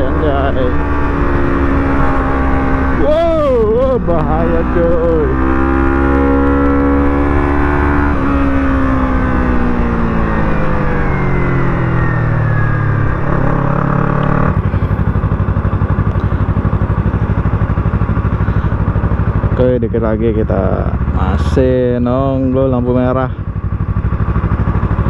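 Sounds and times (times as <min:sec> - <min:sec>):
motorcycle engine winding down: 0:00.0 - 0:25.0.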